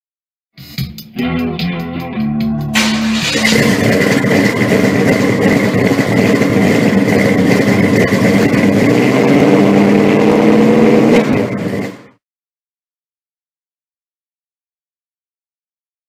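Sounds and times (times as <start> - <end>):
car engine at high revs: 2.7 - 12.2.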